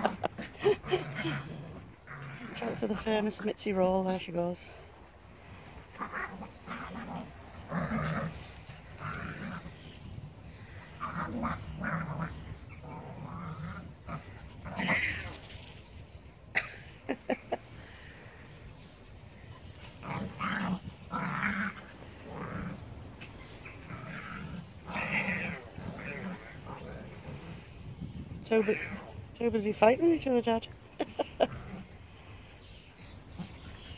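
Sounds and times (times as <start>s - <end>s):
small dogs growling: 0.0s - 3.4s, 5.4s - 16.0s, 19.4s - 29.4s, 31.0s - 33.9s.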